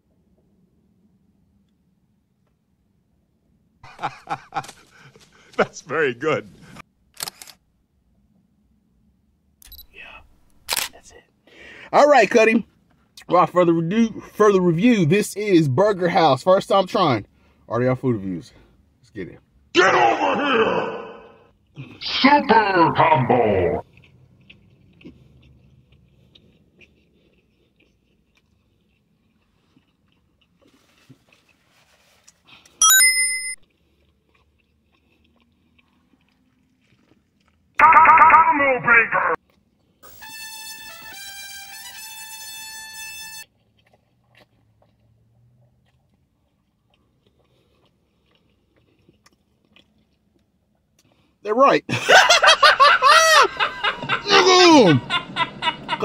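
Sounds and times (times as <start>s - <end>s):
faint chewing: 23.8s - 32.8s, 33.6s - 37.8s, 39.4s - 40.0s, 43.5s - 51.4s
short high ding: 32.8s - 33.6s
held musical notes: 40.0s - 43.4s.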